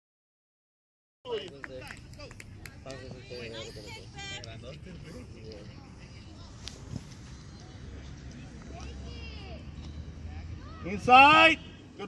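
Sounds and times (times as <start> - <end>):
voices shouting: 7.5 - 12.0.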